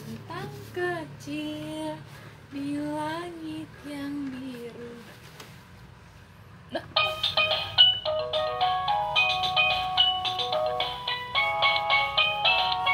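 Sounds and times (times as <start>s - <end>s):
toy beeping melody: 7.0s - 12.9s.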